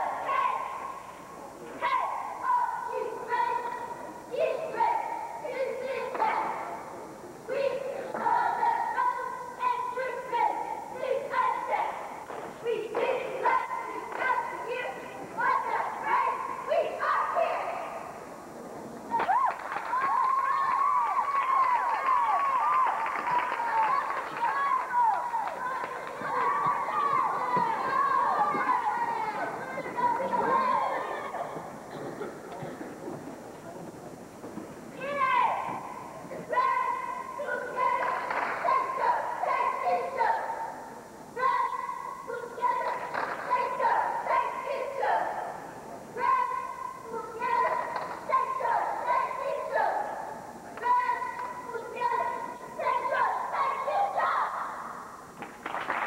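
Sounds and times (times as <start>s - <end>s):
girls chanting a cheer: 0.0s - 6.8s, 7.4s - 18.2s, 19.2s - 31.7s, 34.9s - 55.1s.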